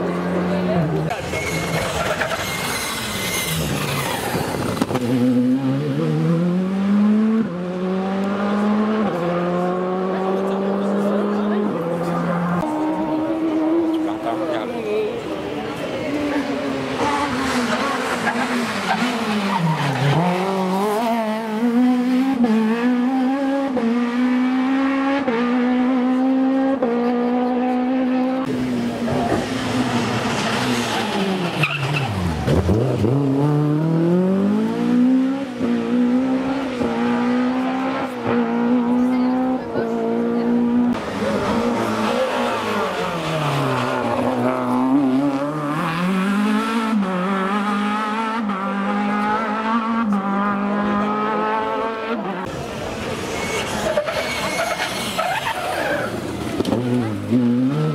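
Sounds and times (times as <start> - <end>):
rally car engines at full throttle: 0.0 - 57.9.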